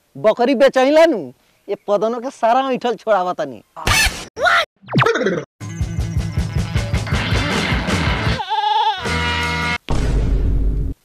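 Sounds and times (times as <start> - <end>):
background music with a beat: 5.6 - 8.4
goat bleating: 8.2 - 9.7.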